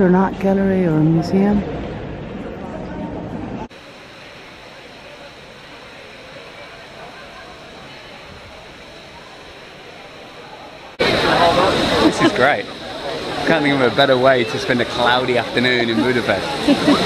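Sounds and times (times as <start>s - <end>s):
fountain jets splashing: 3.8s - 17.0s.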